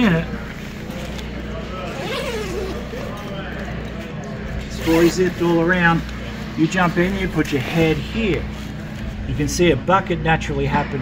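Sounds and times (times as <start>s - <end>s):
steady low hum: 0.0s - 11.0s
fabric rustling: 0.8s - 3.3s.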